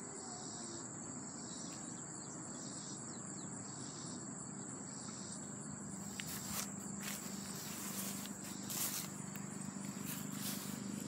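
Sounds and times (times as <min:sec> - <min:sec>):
crickets trilling: 0:00.0 - 0:11.0
soft pulsing insect chorus: 0:00.0 - 0:11.0.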